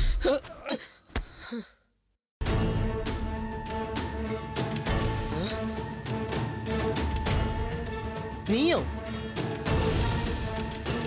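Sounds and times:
dramatic background music: 2.4s - 11.0s.

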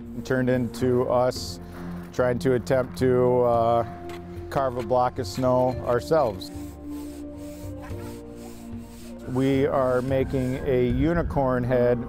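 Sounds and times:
sustained background music: 0.0s - 12.0s
hand saw rasping through snow: 4.8s - 10.9s.

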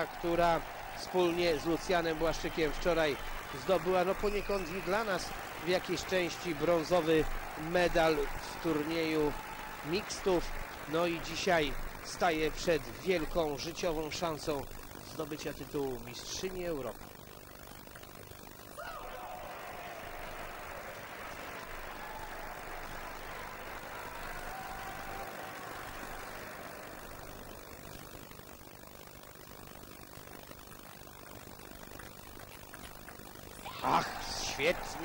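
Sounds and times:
crowd cheering and clapping: 0.0s - 16.9s, 18.7s - 28.0s, 32.0s - 35.0s.

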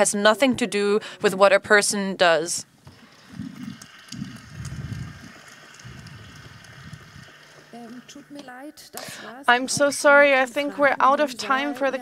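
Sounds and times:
microphone bumps and rustling: 2.8s - 7.3s
audience clapping: 3.3s - 7.7s.

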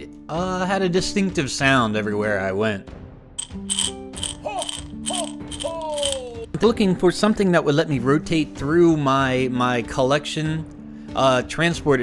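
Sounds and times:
dice rattling in glass jar: 3.4s - 6.3s
music playing: 3.4s - 7.4s.

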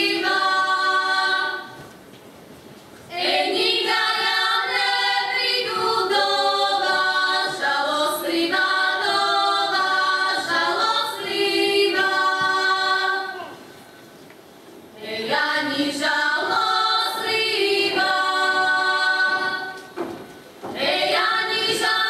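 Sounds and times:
women's choir singing a cappella: 0.0s - 1.9s, 3.1s - 13.6s, 14.9s - 22.0s.

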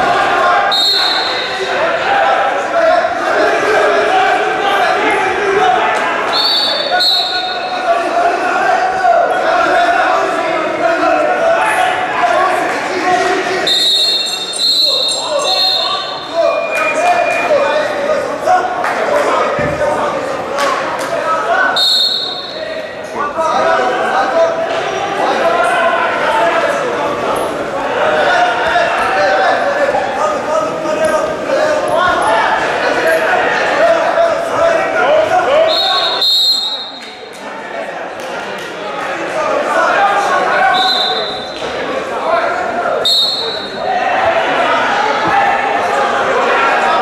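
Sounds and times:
people shouting in a hall: 0.0s - 47.0s
referee's whistle blasts: 0.7s - 1.7s, 6.3s - 7.8s, 13.6s - 17.6s, 21.7s - 22.7s, 35.6s - 37.2s, 40.6s - 41.7s, 43.0s - 43.8s.

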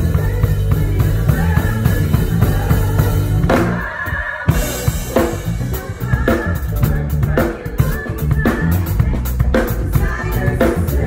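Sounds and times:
drum kit hits: 0.0s - 10.2s
band playing: 0.0s - 11.0s.

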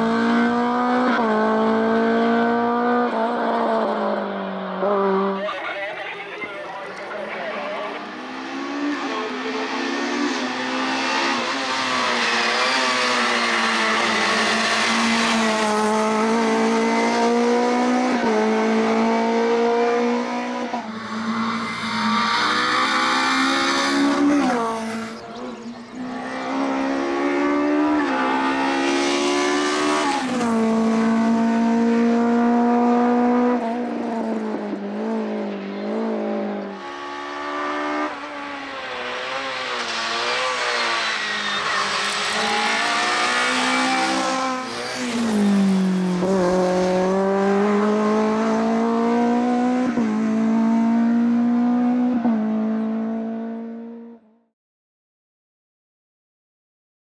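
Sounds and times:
racing car engine revving through gears: 0.0s - 5.4s, 8.0s - 54.2s.

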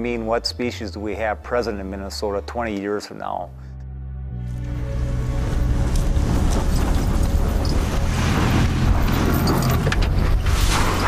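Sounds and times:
truck engine running: 4.8s - 11.0s
tyres churning snow: 5.0s - 11.0s.

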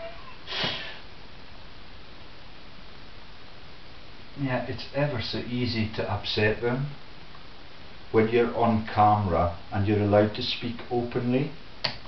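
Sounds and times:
low room hiss: 0.0s - 12.0s
man sniffing: 0.4s - 1.1s.

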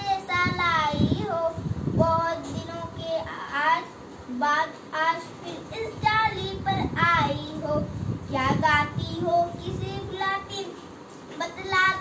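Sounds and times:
girl chanting a poem: 0.0s - 10.8s, 11.4s - 12.0s.

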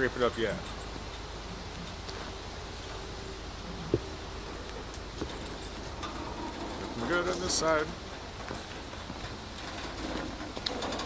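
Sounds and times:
truck engine running: 0.0s - 11.0s.

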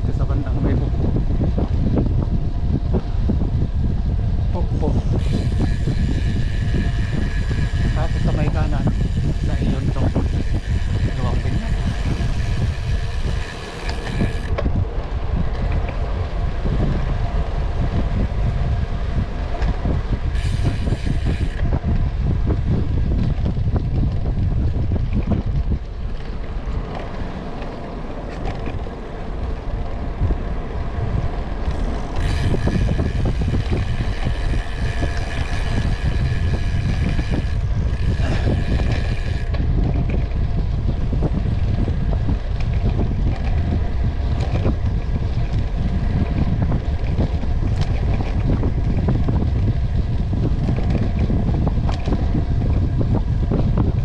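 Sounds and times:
bike tyre and drivetrain noise: 0.0s - 54.0s
wind rumbling on microphone: 0.0s - 54.0s.

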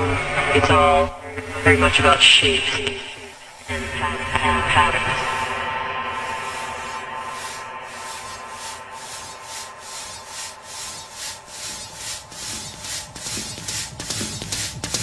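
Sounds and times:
hissing noise pulses: 3.4s - 15.0s.

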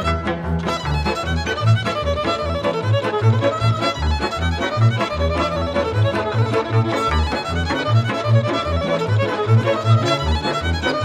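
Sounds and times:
bass line: 0.0s - 11.0s
fast violin melody: 0.0s - 11.0s.

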